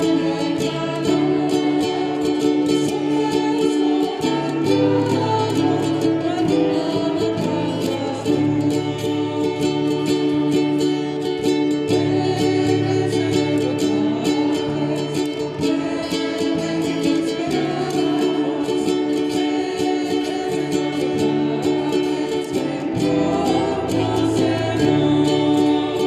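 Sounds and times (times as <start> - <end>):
small string instrument: 0.0 - 26.0
strummed acoustic guitar: 0.0 - 26.0
women singing: 0.0 - 26.0.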